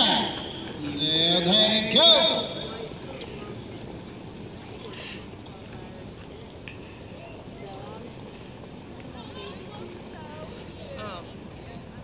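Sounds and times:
wind: 0:00.0 - 0:12.0.

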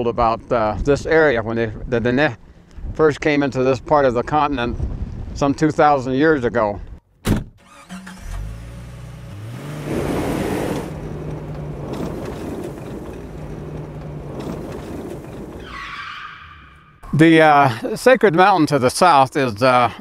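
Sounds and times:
sharp thump: 0:07.2 - 0:07.6
car engine starting and running: 0:07.4 - 0:17.3.

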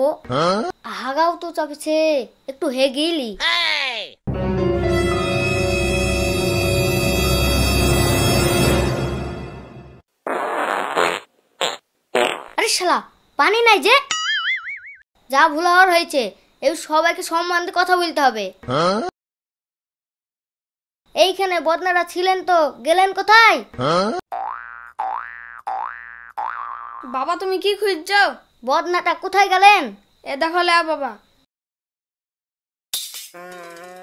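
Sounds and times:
high-pitched speech: 0:00.0 - 0:04.2, 0:12.6 - 0:14.1, 0:15.3 - 0:18.6, 0:21.2 - 0:23.7, 0:27.0 - 0:31.2
comic fart sound effects: 0:10.2 - 0:12.6, 0:18.7 - 0:19.1, 0:23.8 - 0:27.0, 0:33.3 - 0:34.0
cartoon boing sound effect: 0:14.1 - 0:15.0, 0:23.8 - 0:27.0.

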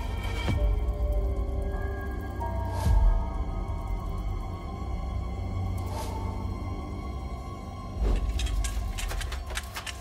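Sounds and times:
sharp clicks and clattering: 0:08.1 - 0:10.0.

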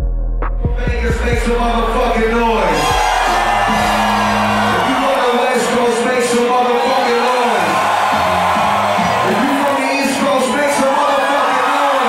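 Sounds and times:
loud club music: 0:00.0 - 0:12.0.

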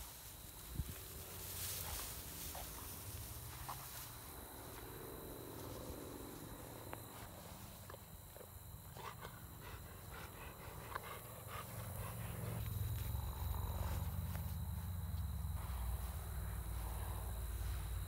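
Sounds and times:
grass rustling: 0:00.0 - 0:18.0.

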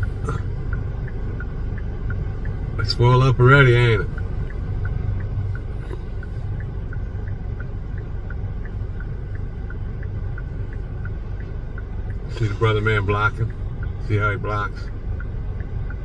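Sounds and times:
car idling: 0:00.0 - 0:16.0.

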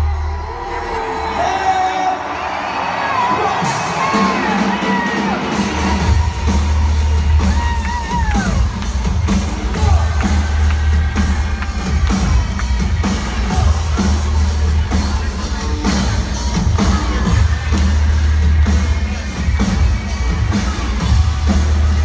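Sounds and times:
loud live music with bass: 0:00.0 - 0:02.3, 0:03.2 - 0:22.0
crowd cheering and whistling: 0:00.0 - 0:22.0.

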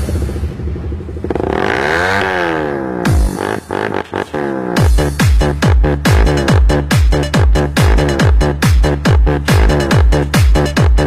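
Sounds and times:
electronic bass: 0:00.0 - 0:11.0
motorcycle engine rev: 0:00.0 - 0:11.0.

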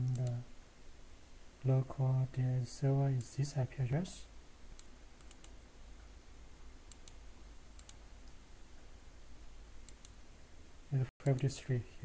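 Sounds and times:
computer mouse clicks: 0:00.0 - 0:00.4, 0:04.8 - 0:05.6, 0:06.9 - 0:07.2, 0:07.8 - 0:08.4, 0:09.8 - 0:10.2, 0:11.2 - 0:11.5
low steady hum: 0:00.0 - 0:12.0.

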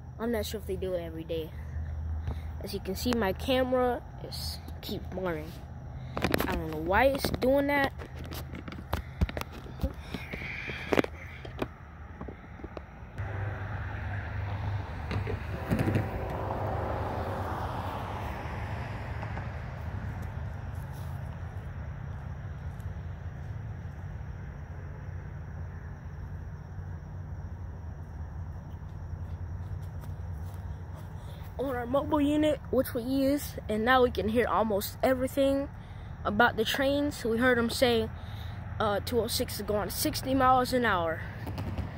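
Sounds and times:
distant traffic rumble: 0:00.0 - 0:41.9
vehicle passing: 0:00.6 - 0:41.9.

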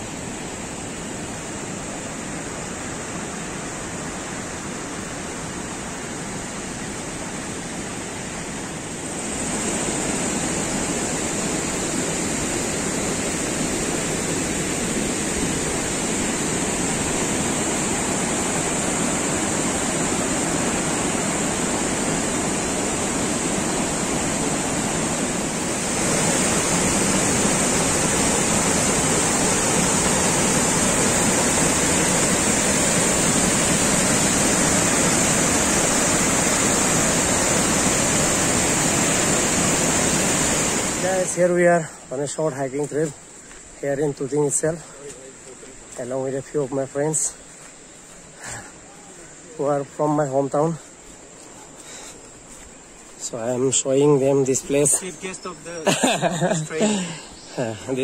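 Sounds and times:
river rushing water roar: 0:00.0 - 0:58.0
stream tumbling over boulders: 0:00.0 - 0:58.0.

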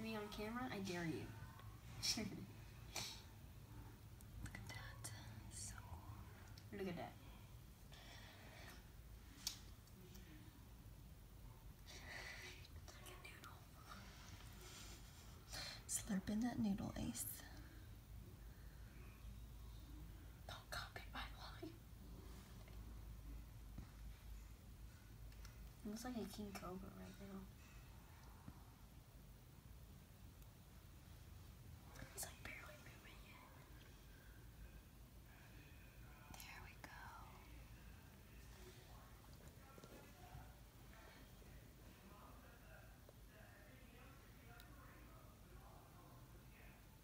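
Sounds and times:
faint whispering: 0:00.0 - 0:25.0, 0:31.8 - 0:47.0.

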